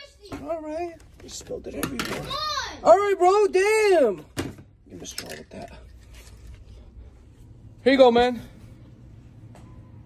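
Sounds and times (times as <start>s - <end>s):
steady low hum: 4.2s - 10.0s.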